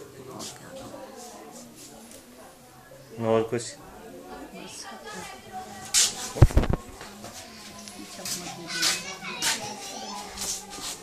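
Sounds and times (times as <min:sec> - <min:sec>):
child's voice: 0:08.4 - 0:11.0.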